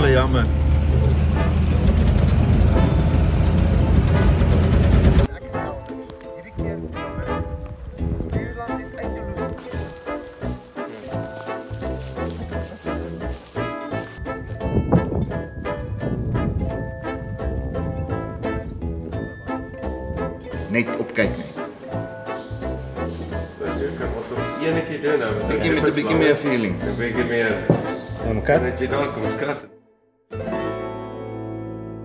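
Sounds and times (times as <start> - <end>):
vehicle driving rumble: 0.0 - 5.3
instrumental music: 2.7 - 32.0
wind noise: 6.9 - 8.6, 13.6 - 20.5.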